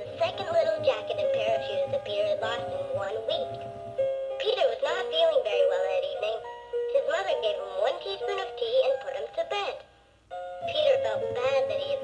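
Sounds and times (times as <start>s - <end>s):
toy voice reading story: 0.0s - 3.6s, 4.4s - 9.9s, 10.7s - 12.0s.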